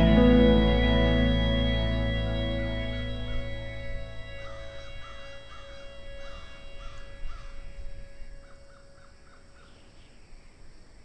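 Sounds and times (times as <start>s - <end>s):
faint background music: 0.0s - 9.5s
bird calling: 0.0s - 10.2s.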